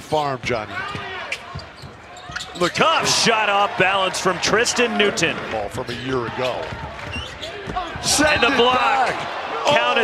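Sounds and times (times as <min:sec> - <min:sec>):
commentator speaking: 0:02.6 - 0:06.5.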